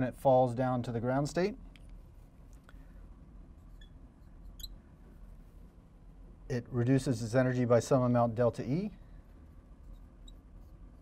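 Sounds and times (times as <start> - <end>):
low room noise: 0.0 - 11.0
marker squeaking on glass: 3.7 - 4.8, 9.8 - 10.8.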